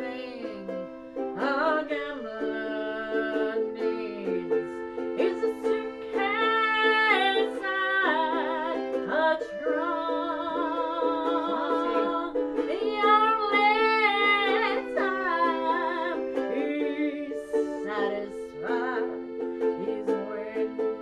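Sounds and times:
ukulele strumming: 0:00.0 - 0:21.0
woman singing with vibrato: 0:00.0 - 0:21.0.

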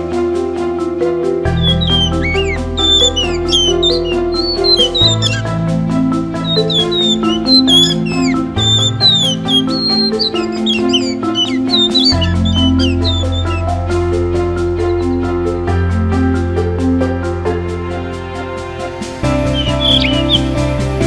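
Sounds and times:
keyboard background music: 0:00.0 - 0:21.0
thrush whistling: 0:01.5 - 0:15.6, 0:19.2 - 0:21.0.

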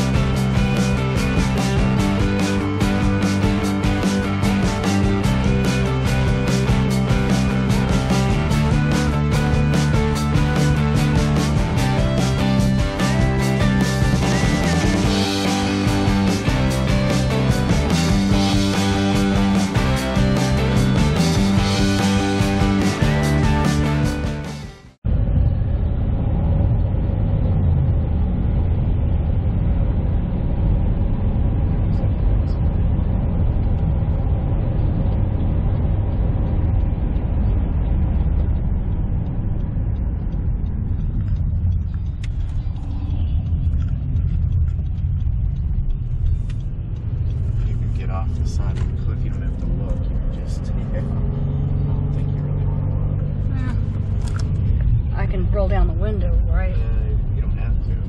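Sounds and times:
car cabin rumble: 0:25.1 - 0:58.0.

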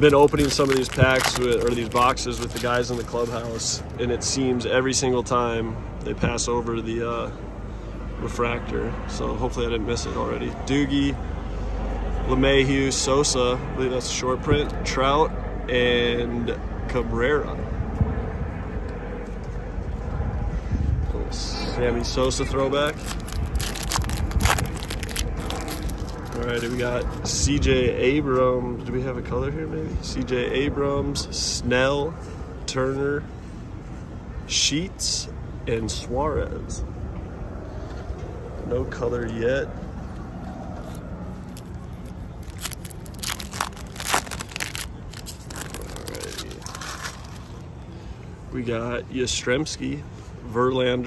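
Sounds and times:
foil wrapper tearing and crinkling: 0:00.0 - 0:03.9, 0:22.7 - 0:27.2, 0:40.8 - 0:47.6
low background rumble: 0:00.0 - 0:06.5, 0:16.6 - 0:28.1, 0:39.6 - 0:48.6.

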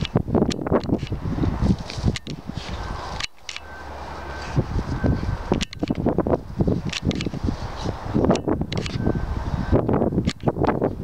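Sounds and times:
wind rumble on microphone: 0:00.0 - 0:11.0
rustling in grass: 0:00.7 - 0:09.8
sharp click: 0:03.2 - 0:03.7, 0:05.5 - 0:06.1, 0:06.9 - 0:07.4, 0:08.3 - 0:09.1, 0:10.2 - 0:10.8.

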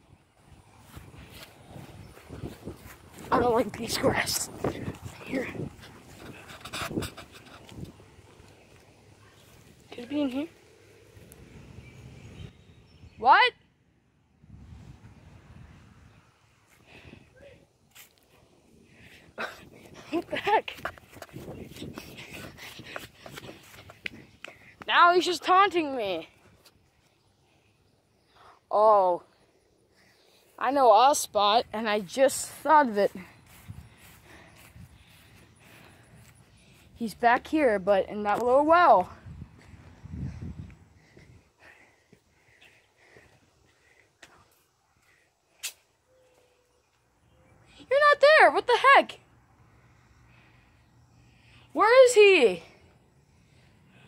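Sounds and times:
footsteps on grass and asphalt: 0:00.4 - 0:11.6, 0:19.9 - 0:27.0, 0:30.5 - 0:41.4.

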